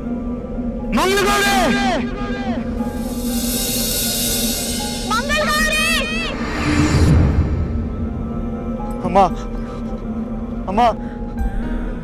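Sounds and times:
low drone music: 0.0s - 12.0s
bright hissing swell: 2.8s - 8.6s.

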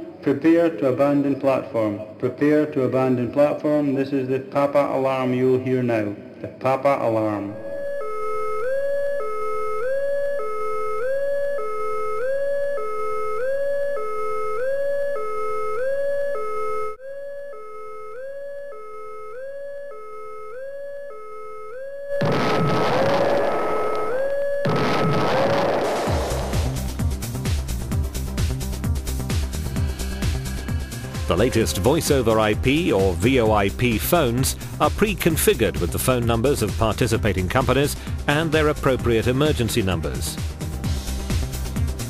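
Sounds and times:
swooping alarm tone: 7.5s - 26.7s, 29.5s - 33.0s
background music with steady beat: 26.1s - 42.0s.

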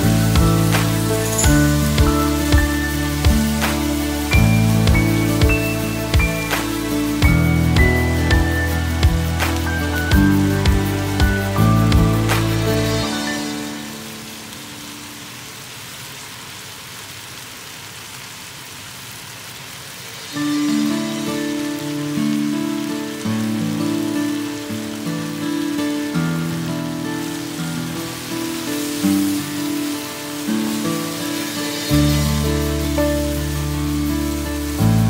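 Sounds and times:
background music: 0.0s - 15.0s, 20.3s - 35.0s
food sizzling in a wok: 0.0s - 35.0s.

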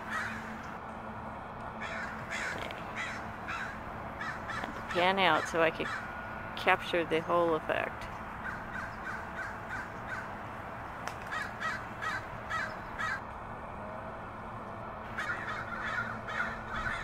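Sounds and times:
crows cawing: 0.0s - 0.6s, 1.8s - 6.2s, 8.3s - 10.5s, 11.2s - 13.3s, 15.1s - 17.0s
steady background hum: 0.0s - 17.0s.

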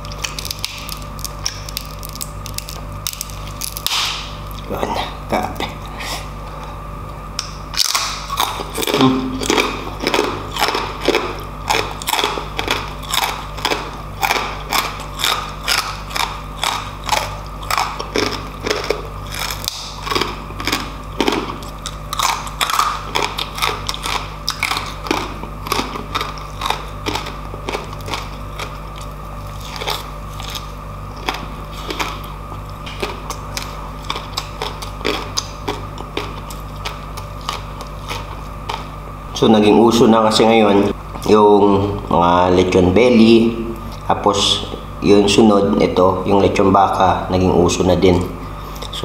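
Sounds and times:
crunching and chewing crispy pork skin: 0.0s - 49.0s.

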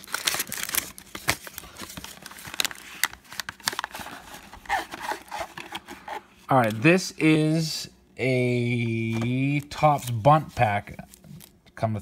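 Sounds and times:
wrapper tearing and crinkling: 0.0s - 5.8s.

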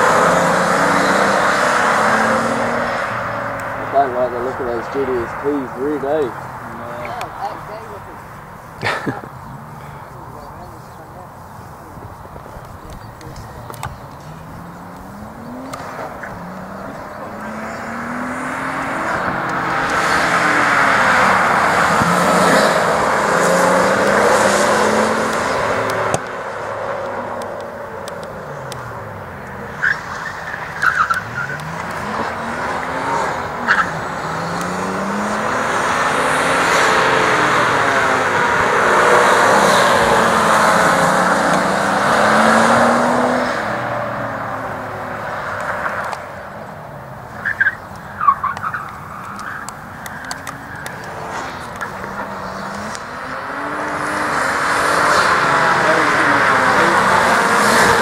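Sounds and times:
car engine revving: 0.0s - 58.0s
tyres sliding on tarmac: 0.0s - 58.0s.

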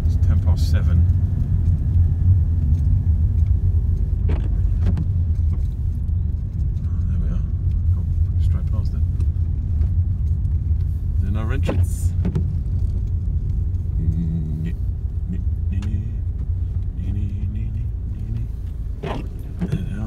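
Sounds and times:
car engine and tyres rumbling: 0.0s - 20.0s
light clicks and rattles: 0.2s - 20.0s.

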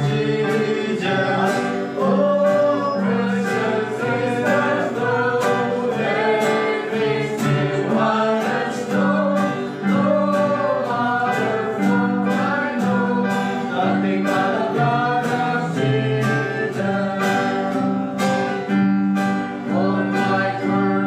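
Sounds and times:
strummed acoustic guitar: 0.0s - 21.0s
voices singing a hymn: 0.0s - 21.0s.

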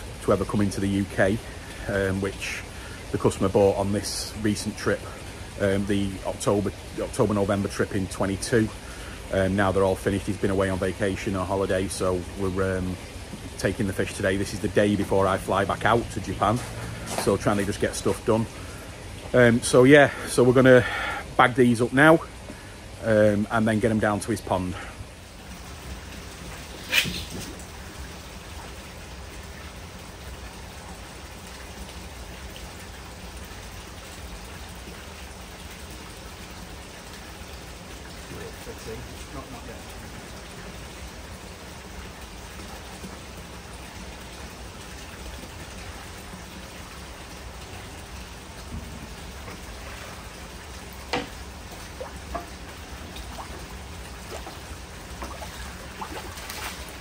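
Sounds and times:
water splashing: 0.0s - 57.0s.

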